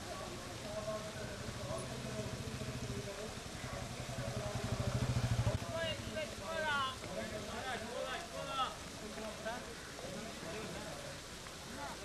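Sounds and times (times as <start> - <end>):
motorcycle engine passing: 0.8 - 6.2.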